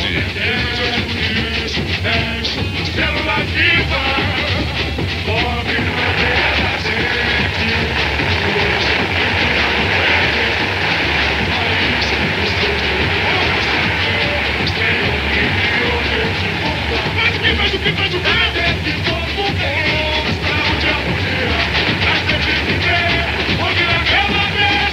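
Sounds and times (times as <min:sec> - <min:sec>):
crowd noise: 0:00.0 - 0:24.9
fireworks crackling: 0:00.0 - 0:24.9
samba music: 0:00.0 - 0:24.9.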